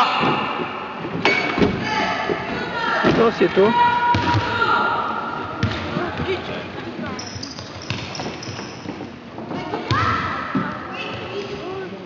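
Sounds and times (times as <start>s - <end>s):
basketball bouncing on floor: 7.4s - 8.9s.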